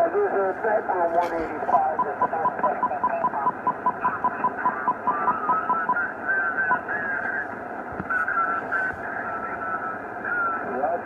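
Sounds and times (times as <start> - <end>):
garbled off-tune radio voices: 0.0 - 11.0
radio band hiss: 0.0 - 11.0.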